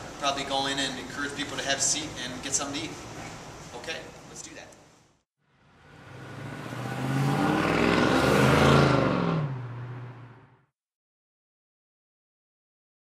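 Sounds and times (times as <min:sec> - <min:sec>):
car engine passing by: 0:05.5 - 0:10.7.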